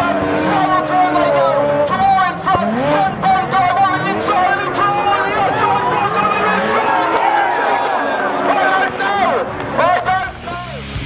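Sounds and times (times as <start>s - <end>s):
man speaking: 0.0s - 6.8s
crowd chatter: 0.0s - 11.0s.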